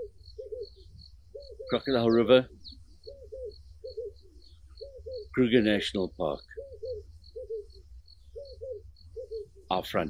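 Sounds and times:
dove cooing: 0.0s - 10.0s.

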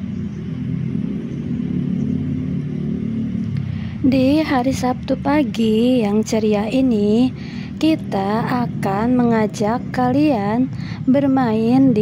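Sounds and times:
motor traffic rumble: 0.0s - 12.0s.

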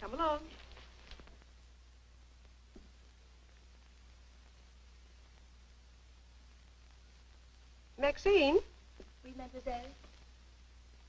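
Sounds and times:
film soundtrack hiss: 0.0s - 11.0s.

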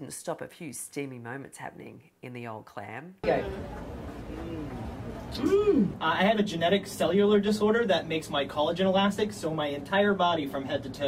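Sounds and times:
noisy background: 3.2s - 11.0s
woman humming: 4.3s - 6.0s.

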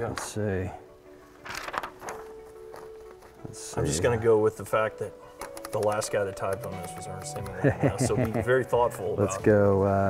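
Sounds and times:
background music: 0.0s - 10.0s
paper rustling: 1.2s - 4.7s, 5.3s - 8.7s
typewriter clicks: 5.4s - 7.6s.

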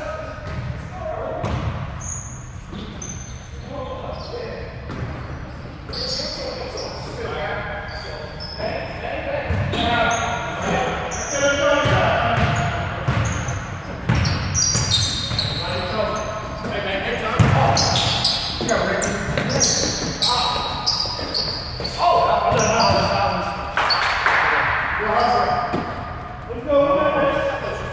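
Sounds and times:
sneakers squeaking: 0.0s - 27.9s
players calling out: 5.9s - 27.9s
basketball bouncing on hardwood: 17.4s - 17.7s.

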